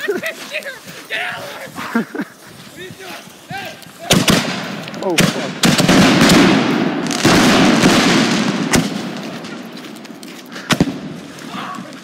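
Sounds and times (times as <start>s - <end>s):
firework mortars banging: 3.8s - 11.5s.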